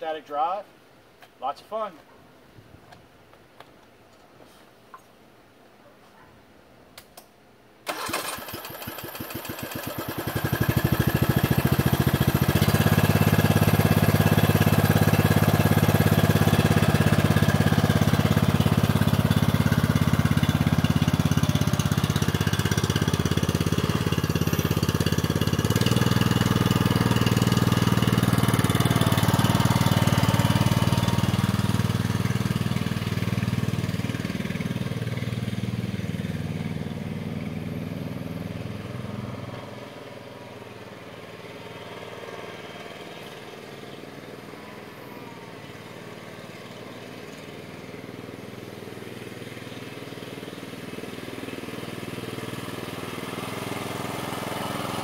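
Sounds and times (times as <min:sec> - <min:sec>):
engine starting and running: 0:07.8 - 0:55.0.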